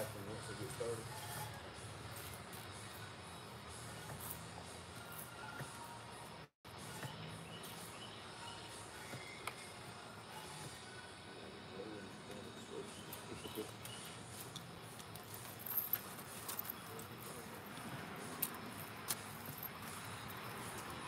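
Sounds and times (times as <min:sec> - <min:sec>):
faint outdoor background: 0:00.0 - 0:21.0.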